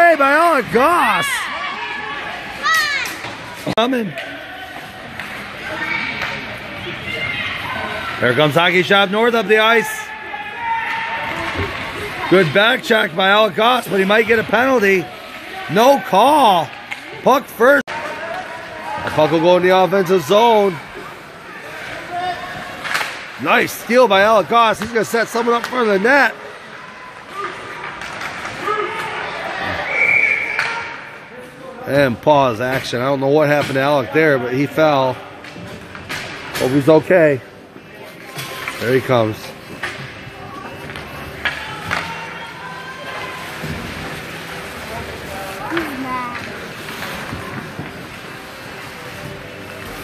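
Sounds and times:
ice rink background haze: 0.0s - 50.0s
murmur of spectators and players: 0.0s - 50.0s.

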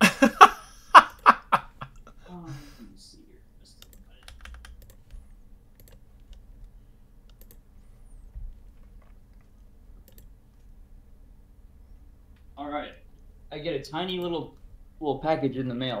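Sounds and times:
laugh-like voice: 0.0s - 2.8s
computer keyboard clicks: 3.8s - 5.2s, 5.8s - 6.4s, 7.2s - 7.6s, 8.7s - 10.3s.

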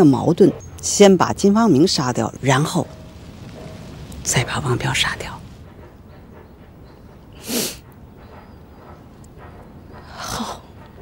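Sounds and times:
low steady background: 0.0s - 11.0s.

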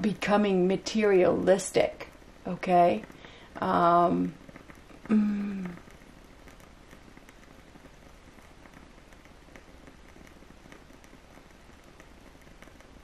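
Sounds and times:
faint steady hiss: 0.0s - 13.0s
light scattered clicks: 4.3s - 13.0s.

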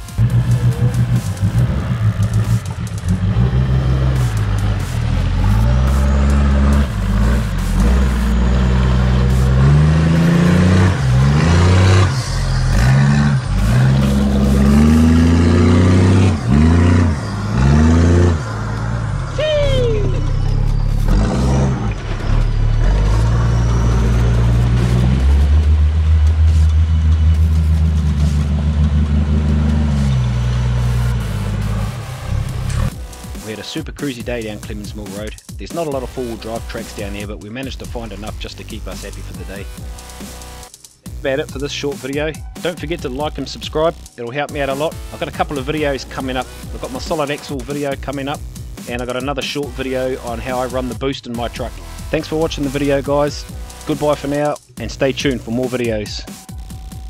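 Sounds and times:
truck engine revving: 0.0s - 33.6s, 34.4s - 55.9s
electronic music with heavy bass: 0.0s - 57.0s.

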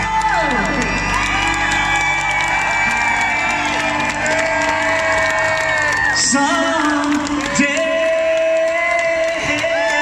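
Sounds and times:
live rock band playing: 0.0s - 8.2s
crowd cheering and shouting: 0.0s - 10.0s.

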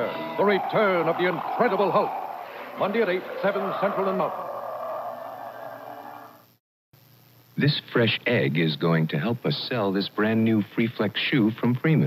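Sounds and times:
steady sustained tone: 0.0s - 6.4s.

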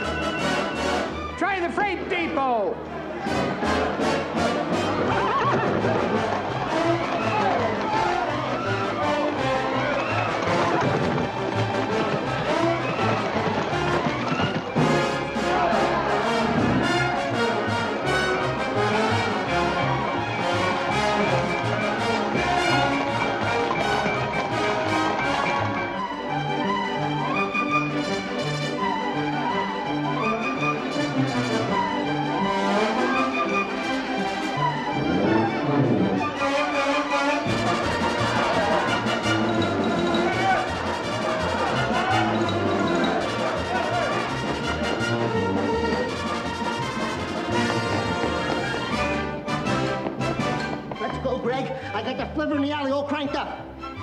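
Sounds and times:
orchestral chase music with brass: 0.0s - 54.0s.

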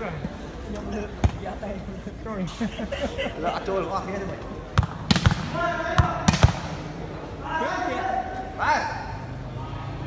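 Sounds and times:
spectators chattering: 0.0s - 10.0s
volleyball thump: 4.7s - 6.8s.

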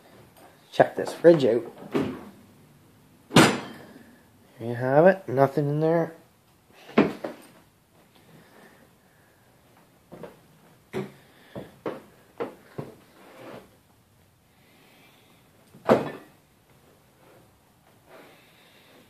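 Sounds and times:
loud thump: 3.3s - 3.8s.

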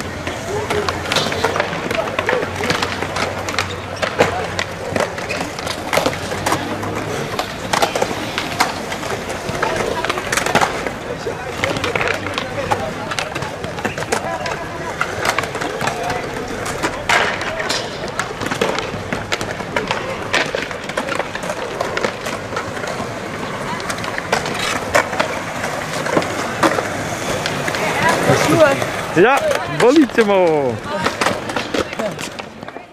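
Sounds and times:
skateboards clacking on ground: 0.0s - 32.9s
skateboards rolling on concrete: 0.0s - 32.9s.

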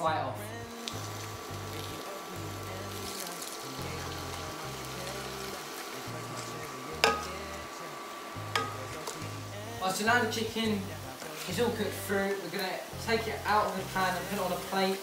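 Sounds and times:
chicken sizzling in a frying pan: 0.7s - 15.0s.

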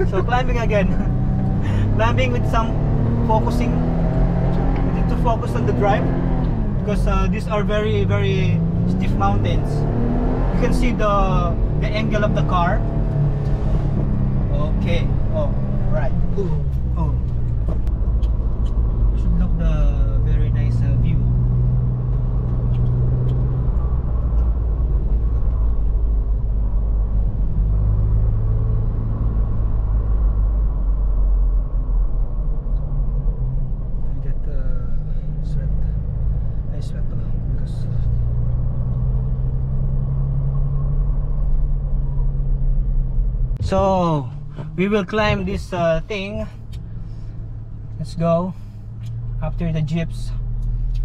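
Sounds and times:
car engine rumble from inside: 0.0s - 51.0s.

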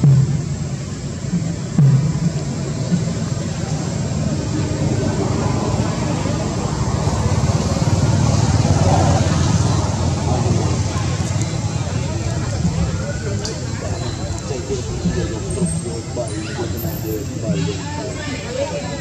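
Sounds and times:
motor vehicle engine rumble: 0.0s - 19.0s.

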